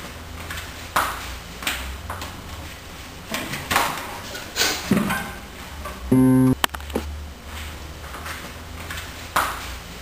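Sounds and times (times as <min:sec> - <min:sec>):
steady low hum: 0:06.1 - 0:07.4.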